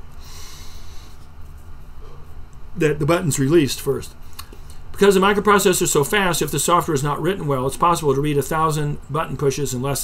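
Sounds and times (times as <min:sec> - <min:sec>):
man breathing through nose: 0:00.1 - 0:01.3.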